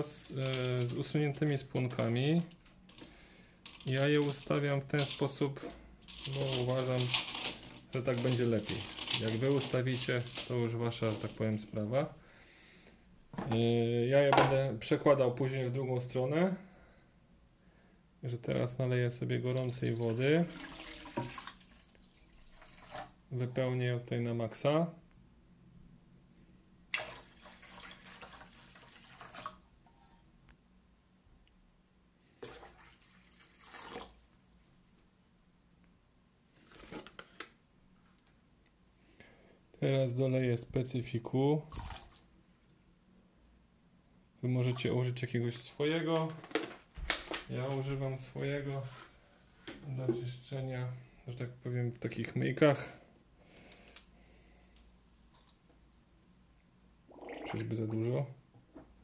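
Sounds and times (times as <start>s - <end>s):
water pouring into metal tank: 20.0s - 23.1s, 26.9s - 29.6s, 32.4s - 34.2s.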